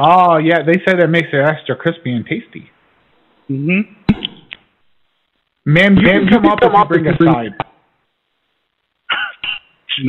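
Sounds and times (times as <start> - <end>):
person's vocal sounds over phone: 3.5 - 4.1.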